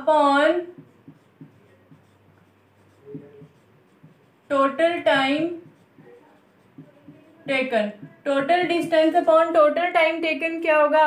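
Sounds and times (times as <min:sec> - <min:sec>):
low steady hum: 0:00.0 - 0:10.2
marker strokes on whiteboard: 0:00.0 - 0:10.3.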